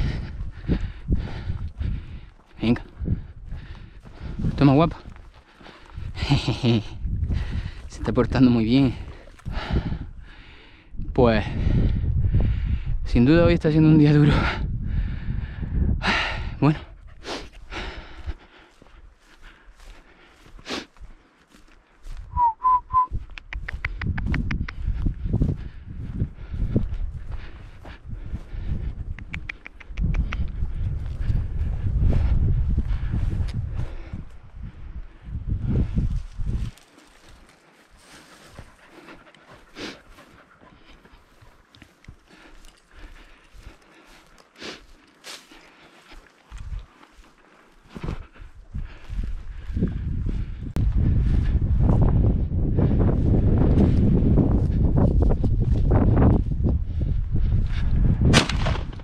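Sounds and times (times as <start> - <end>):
footsteps through dry grass: 0.0 - 10.8, 16.1 - 29.2, 30.3 - 59.0
wind buffeting microphone: 0.0 - 59.0
short whistled notes: 22.3 - 23.1.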